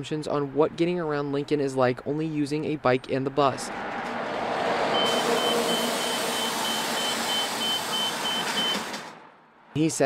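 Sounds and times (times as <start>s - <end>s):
high electronic beeps: 5.0s - 8.8s.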